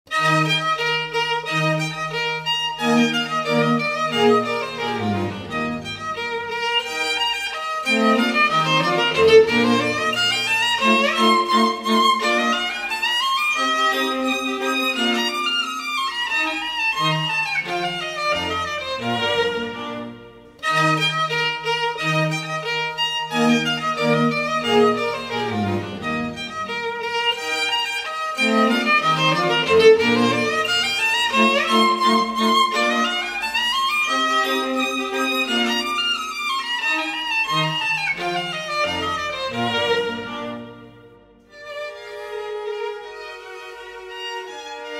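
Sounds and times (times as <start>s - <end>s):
violin background music: 0.1s - 44.9s.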